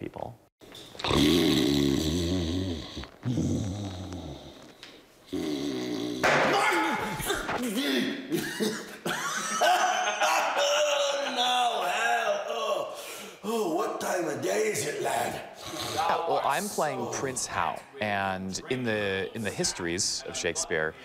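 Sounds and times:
man snoring loudly: 1.0s - 4.6s, 5.3s - 6.2s
man speaking: 11.0s - 21.0s.

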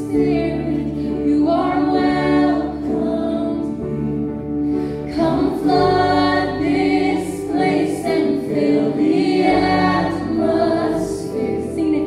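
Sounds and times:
voices singing in harmony: 0.0s - 12.0s.

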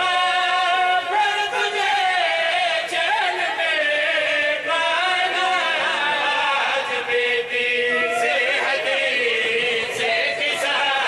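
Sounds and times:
men chanting: 0.0s - 11.0s.

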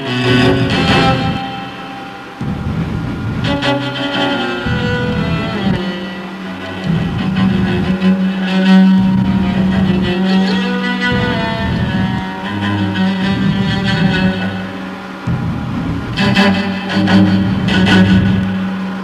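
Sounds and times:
detuned cello bowed notes: 0.0s - 19.0s.

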